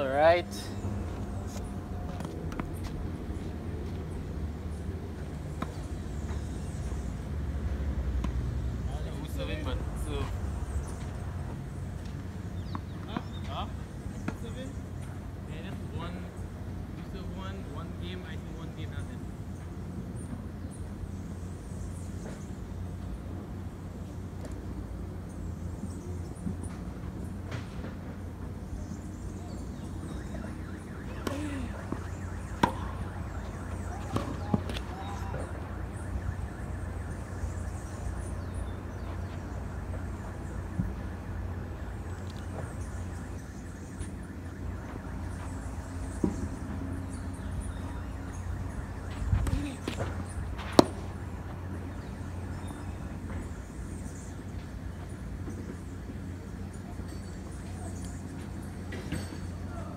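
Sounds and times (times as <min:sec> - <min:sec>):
low outdoor rumble: 0:00.0 - 0:56.9
tennis balls struck by rackets: 0:01.0 - 0:03.1, 0:08.1 - 0:08.5, 0:14.2 - 0:15.2, 0:29.6 - 0:36.0, 0:49.0 - 0:53.5.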